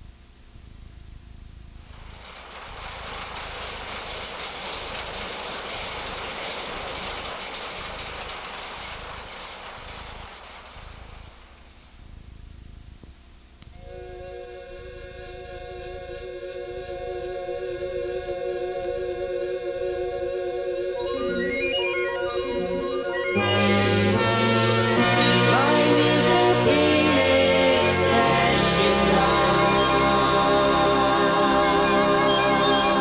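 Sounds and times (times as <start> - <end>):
rushing noise: 1.9 - 11.8
electronic keyboard chords: 13.7 - 33.0.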